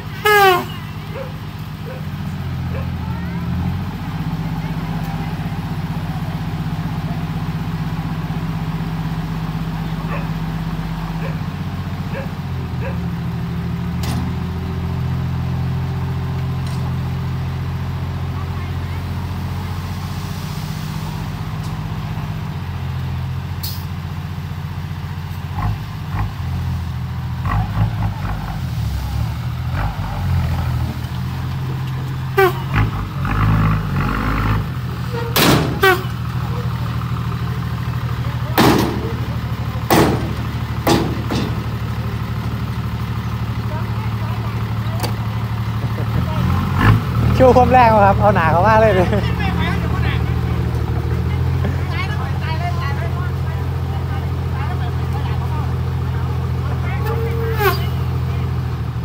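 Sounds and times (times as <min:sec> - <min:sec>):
diesel truck engine running: 0:00.0 - 0:59.0
sharp knocks and bangs: 0:35.3 - 0:36.1, 0:38.6 - 0:39.2, 0:39.9 - 0:41.8.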